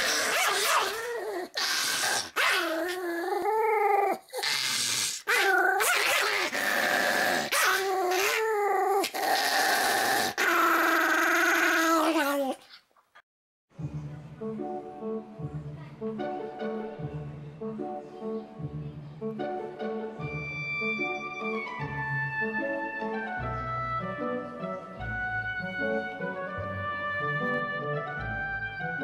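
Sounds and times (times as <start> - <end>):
dog growling and yapping: 0.0 - 12.9.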